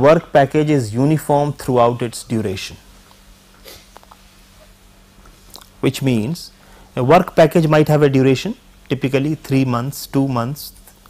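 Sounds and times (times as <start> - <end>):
low electrical hum: 0.0 - 11.0
faint intake of breath: 3.6 - 4.0, 6.5 - 7.0.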